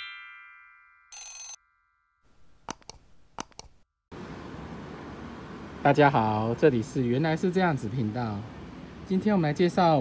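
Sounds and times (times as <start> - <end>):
bright bell ring: 0.0 - 2.1
mouse clicks: 2.6 - 3.8.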